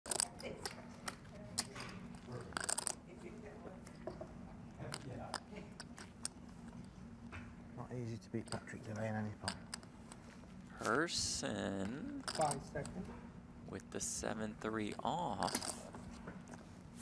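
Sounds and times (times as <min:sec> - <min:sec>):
clay poker chips clicking: 0:00.1 - 0:03.0, 0:04.9 - 0:06.5, 0:09.4 - 0:10.2, 0:11.8 - 0:13.0, 0:14.7 - 0:16.6
steady low hum: 0:00.1 - 0:17.0.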